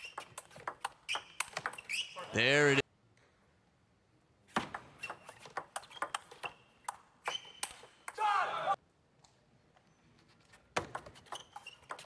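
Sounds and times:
table tennis ball ticking: 0.0 - 1.9
people shouting: 8.2 - 8.8.

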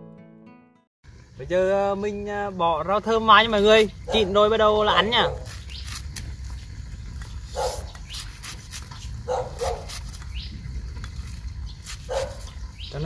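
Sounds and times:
dog barking: 4.0 - 5.5, 7.5 - 7.9, 9.2 - 10.0, 12.0 - 12.6.

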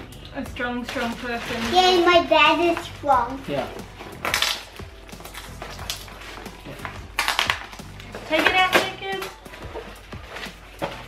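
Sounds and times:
plastic bag and cardboard tearing: 0.7 - 11.0.

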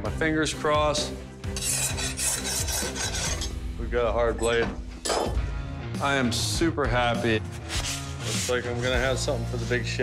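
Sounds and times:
file scraping steel blade: 1.5 - 3.6.

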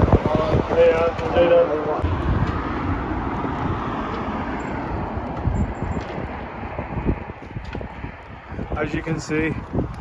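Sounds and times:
street traffic rushing: 0.0 - 10.0
wind buffeting microphone: 0.0 - 10.0.

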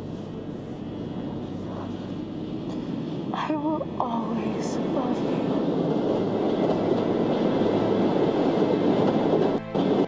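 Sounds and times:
subway train rumbling: 0.0 - 10.0.

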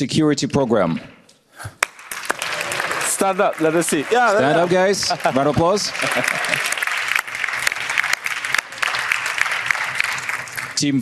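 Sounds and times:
audience applause: 1.8 - 11.0.

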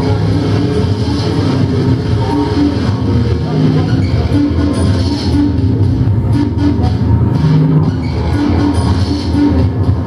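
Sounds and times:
electronic industrial music: 0.0 - 10.0.

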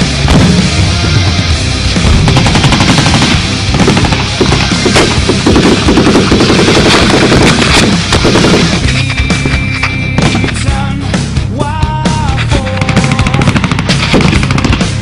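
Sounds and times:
heavy rock music: 0.0 - 15.0
machine-gun fire: 2.0 - 9.6, 12.6 - 15.0.

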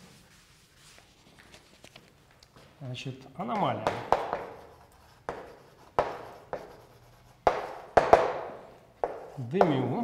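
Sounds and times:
chalk knocking and scraping on blackboard: 3.8 - 10.0.

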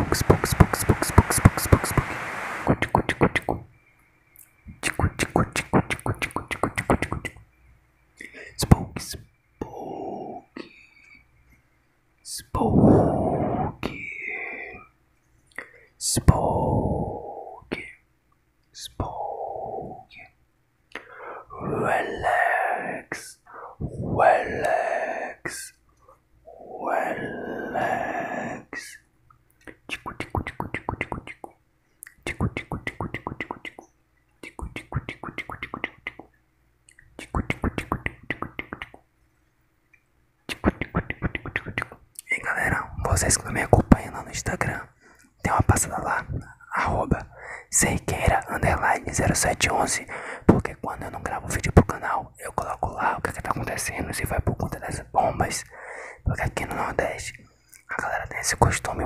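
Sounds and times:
short high hiss: 0.0 - 2.8
mouth clicks: 0.0 - 3.6, 4.4 - 7.4, 28.8 - 39.1, 39.9 - 42.3
breathy whispering: 0.0 - 3.7, 4.4 - 7.5, 8.2 - 11.4, 12.2 - 18.1, 18.7 - 39.0, 40.5 - 59.0.

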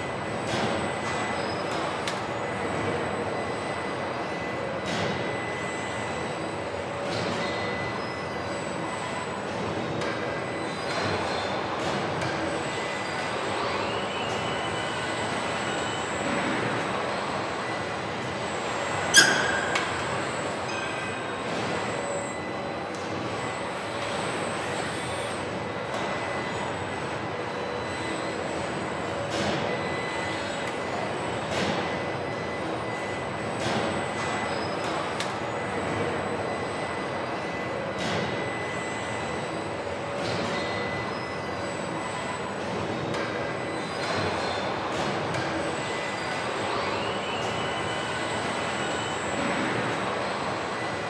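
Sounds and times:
factory machinery noise: 0.0 - 51.0.

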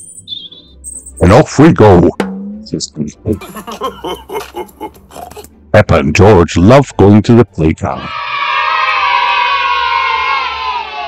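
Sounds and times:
children cheering: 8.0 - 11.0.

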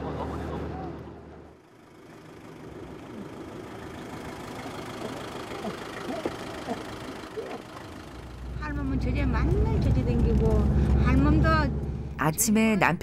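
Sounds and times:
vehicle engine idling: 0.0 - 12.2
outdoor street noise: 0.0 - 13.0.

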